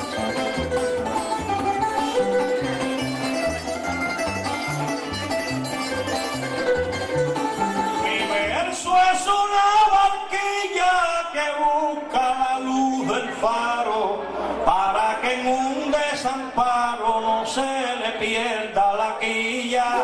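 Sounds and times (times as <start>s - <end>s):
string band playing: 0.0s - 9.8s
man singing: 7.9s - 20.0s.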